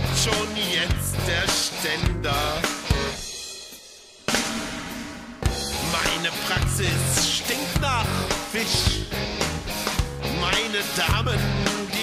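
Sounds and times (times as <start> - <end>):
drums: 0.0 - 12.0
punk rock band playing: 0.0 - 12.0.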